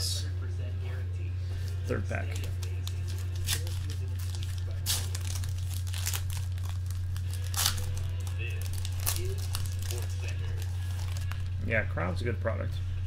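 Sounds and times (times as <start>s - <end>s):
steady low hum: 0.0s - 13.0s
wrapper crinkling: 2.2s - 11.6s
sharp ripping sounds: 2.3s - 11.5s
card pack wrapper tearing: 2.3s - 11.6s.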